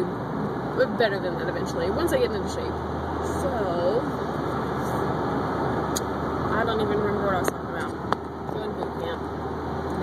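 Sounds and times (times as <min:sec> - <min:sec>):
car road and engine noise: 0:00.0 - 0:10.0.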